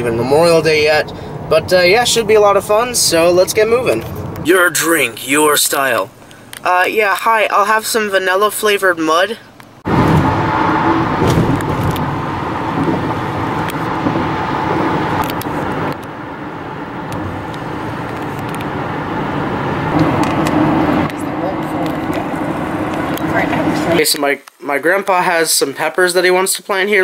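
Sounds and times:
car interior road noise: 0:00.0 - 0:24.1.

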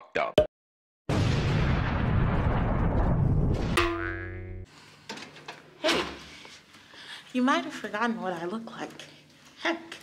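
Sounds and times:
ringing boing-like tone: 0:03.8 - 0:04.6.

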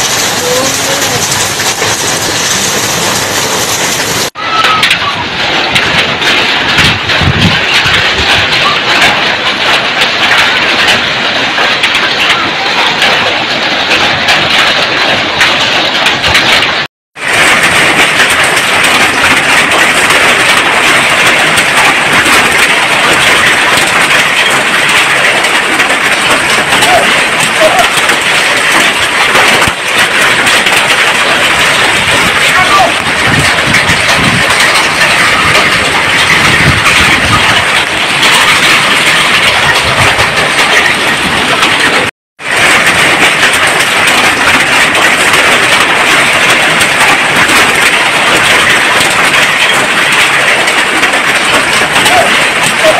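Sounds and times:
hail and heavy rain on roofs: 0:00.0 - 0:52.9.

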